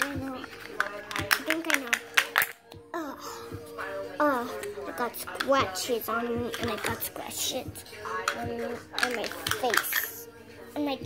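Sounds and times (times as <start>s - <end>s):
plastic toy tapping on tile floor: 0.0s - 2.8s, 6.4s - 7.2s, 8.1s - 10.2s
quiet background music: 0.0s - 11.0s.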